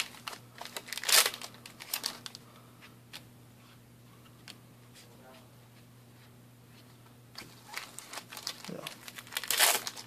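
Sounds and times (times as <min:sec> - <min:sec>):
foil wrapper crinkling and tearing: 0:00.0 - 0:02.4, 0:07.7 - 0:10.0.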